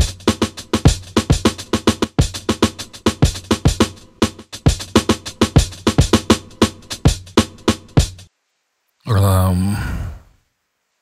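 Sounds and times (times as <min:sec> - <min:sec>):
electronic drum loop: 0:00.0 - 0:08.3.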